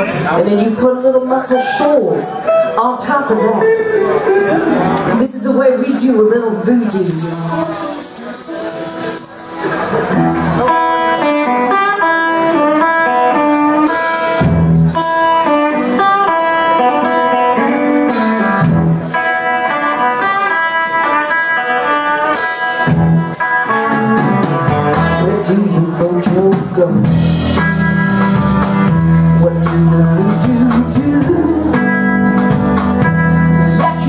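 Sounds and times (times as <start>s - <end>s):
electric guitar: 0.0s - 34.0s
drum kit: 6.7s - 34.0s.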